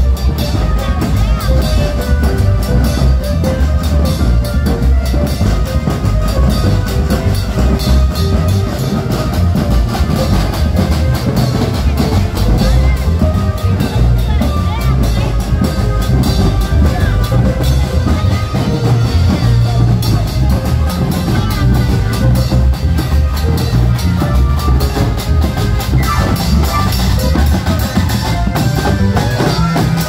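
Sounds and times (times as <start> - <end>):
loud bass-heavy carnival music: 0.0 - 30.0.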